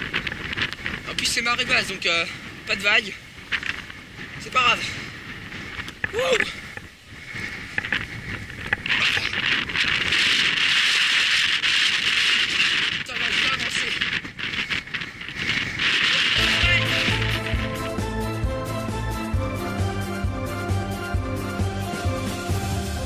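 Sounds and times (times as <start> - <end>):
bicycle rattling over wooden boards: 0.0 - 1.1, 3.4 - 4.4, 5.5 - 17.8
music: 16.4 - 23.0.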